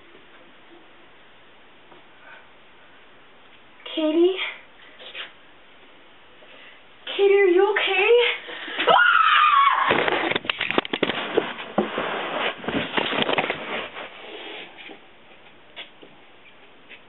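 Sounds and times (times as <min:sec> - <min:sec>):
girl's high cry: 0:08.9 - 0:10.0
camera knocking and clattering: 0:10.0 - 0:11.2.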